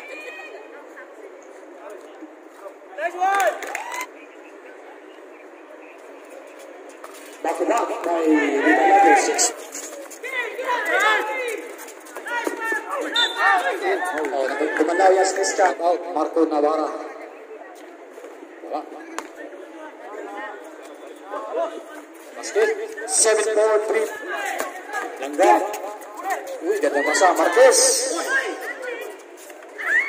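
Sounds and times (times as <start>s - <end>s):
people shouting and calling out: 7.4s - 16.1s, 19.7s - 30.0s.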